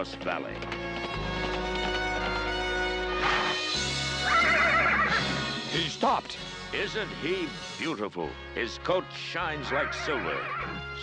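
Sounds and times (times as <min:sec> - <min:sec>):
horse whinnying: 0:03.2 - 0:05.6, 0:09.6 - 0:11.0.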